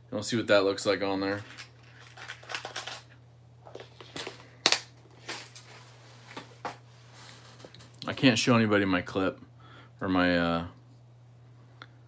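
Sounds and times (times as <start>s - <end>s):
small metal parts rattling: 1.3s - 4.4s.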